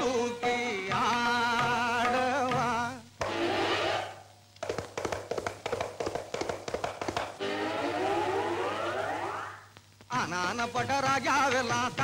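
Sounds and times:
quick irregular taps: 4.6s - 7.4s
old film soundtrack music: 7.3s - 9.7s
falling tone: 7.4s - 9.7s
tone sliding upward: 7.4s - 9.7s.

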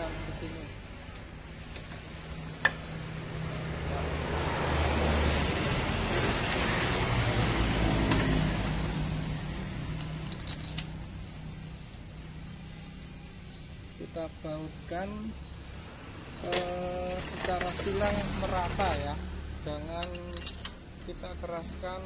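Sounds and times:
road vehicle passing by: 0.0s - 14.0s, 15.3s - 22.0s
light metallic clinks: 18.7s - 20.9s.

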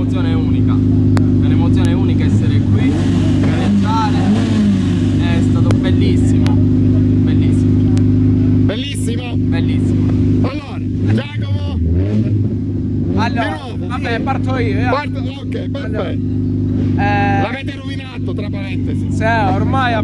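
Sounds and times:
car engine idling: 0.0s - 20.0s
voices talking: 0.0s - 20.0s.

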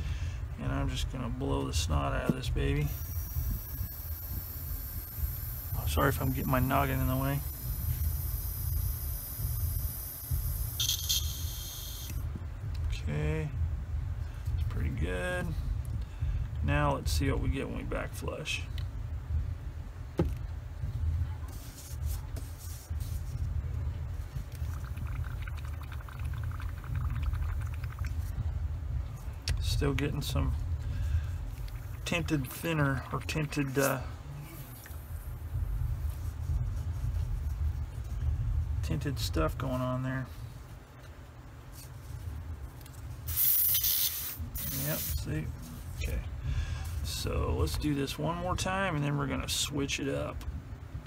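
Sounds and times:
steady low hum: 0.0s - 51.0s
airbrush spraying hiss: 2.8s - 12.2s, 43.2s - 45.9s
rapid bubbling: 24.5s - 28.4s.

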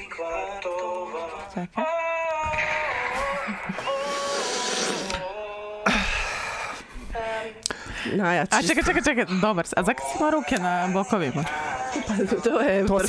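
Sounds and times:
young man singing long notes: 0.0s - 7.8s.

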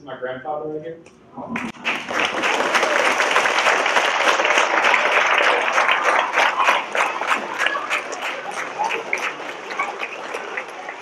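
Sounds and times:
audience applauding: 1.6s - 11.0s.

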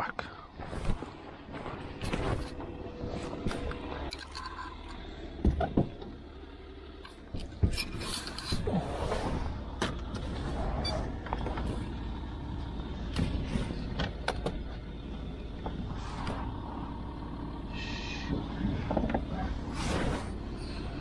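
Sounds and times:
car engine idling: 0.0s - 21.0s
knocks and clicks of gear: 0.8s - 6.4s, 7.0s - 17.0s, 18.0s - 21.0s.

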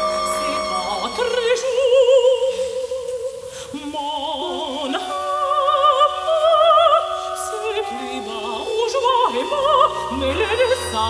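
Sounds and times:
alto voice singing: 0.0s - 11.0s.

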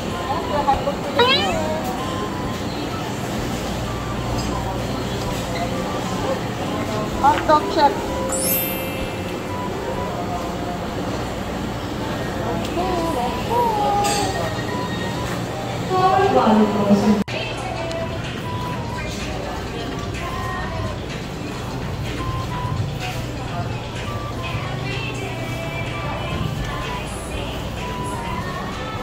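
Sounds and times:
store background noise: 0.0s - 29.0s
cat-like meow: 1.2s - 1.9s.

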